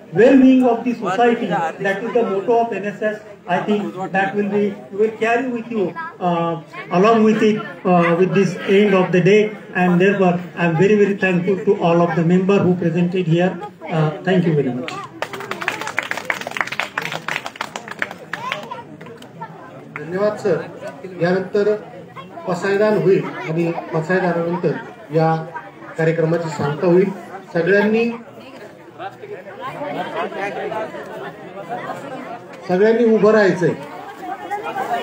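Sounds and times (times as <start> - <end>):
people chattering: 0.0 - 35.0
audience applause: 14.9 - 19.2.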